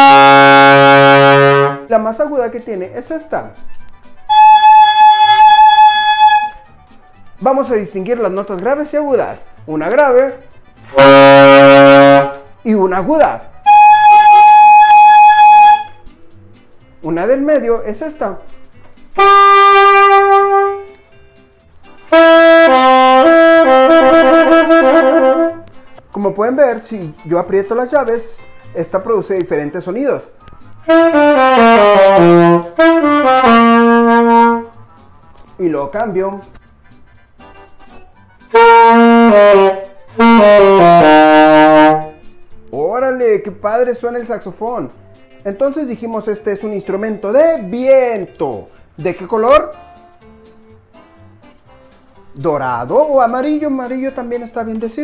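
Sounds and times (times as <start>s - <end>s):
saxophone holding high note: 0.0s - 1.9s, 4.3s - 6.7s, 10.9s - 12.4s, 13.6s - 16.0s, 19.2s - 21.0s, 22.1s - 25.7s, 30.8s - 34.7s, 38.5s - 42.2s.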